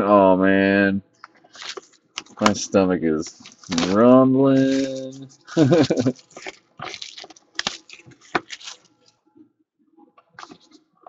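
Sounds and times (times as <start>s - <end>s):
plastic shrink-wrap crinkling: 1.3s - 4.0s, 4.6s - 9.2s, 10.4s - 10.8s.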